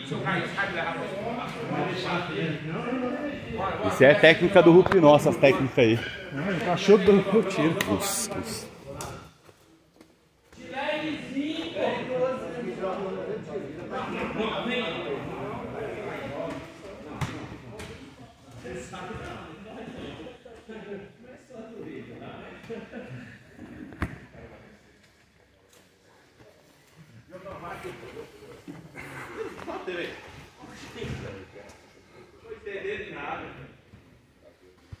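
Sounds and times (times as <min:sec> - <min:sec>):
men talking in background: 0:00.0 - 0:35.0.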